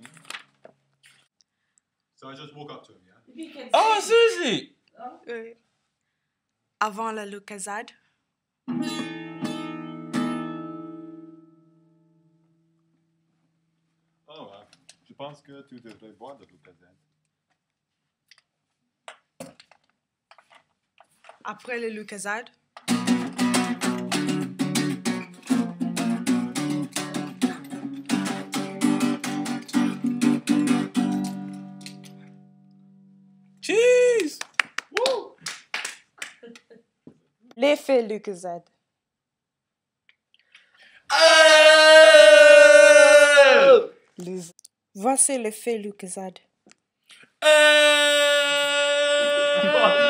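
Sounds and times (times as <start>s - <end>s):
acoustic guitar strummed: 8.7s - 12.8s, 22.9s - 33.6s.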